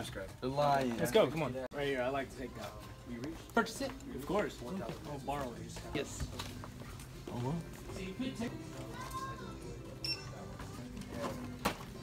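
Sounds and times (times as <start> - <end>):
background music: 0.0 - 12.0
checkout register beep: 10.0 - 10.5.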